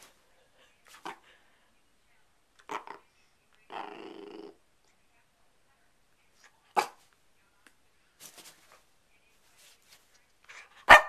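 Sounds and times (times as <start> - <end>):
puppy growling grumble: 3.7 - 4.6.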